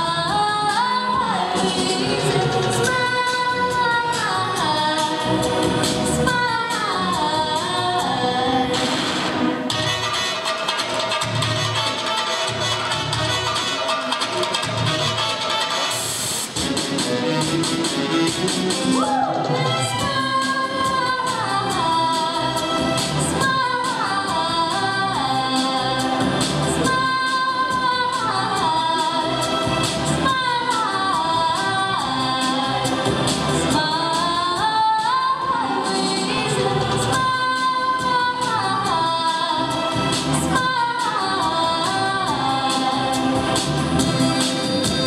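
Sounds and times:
girl singing into a microphone: 0.0 - 5.4, 6.2 - 8.7, 20.0 - 22.6, 23.4 - 26.0, 26.9 - 29.4, 30.2 - 32.8, 33.7 - 43.1
instrumental backing with percussion: 0.0 - 45.0.

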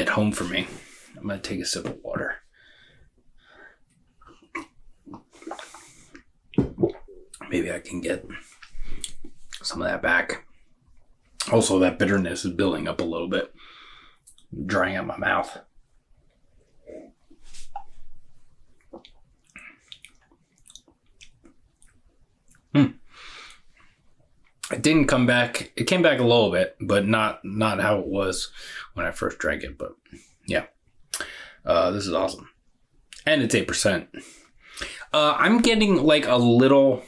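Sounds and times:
lip smacks and tongue clicks: 4.2 - 6.3, 18.9 - 22.7
man gulping water: 4.2 - 7.5, 16.9 - 18.1, 18.8 - 23.0.

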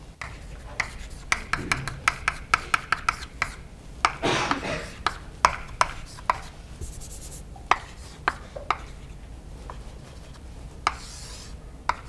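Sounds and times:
chalk scratching on blackboard: 0.2 - 4.2, 4.9 - 12.0
chalk tapping on blackboard: 0.2 - 12.0.

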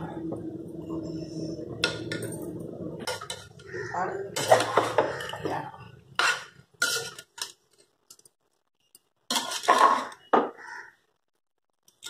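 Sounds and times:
ladle scraping a metal pot: 4.3 - 5.4, 6.2 - 7.6, 9.3 - 10.3.

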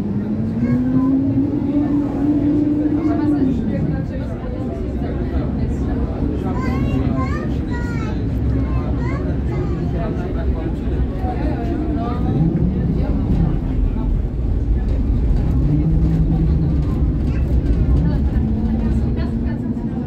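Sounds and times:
faint voices: 0.0 - 20.0
tram rumbling on rails: 0.0 - 20.0.

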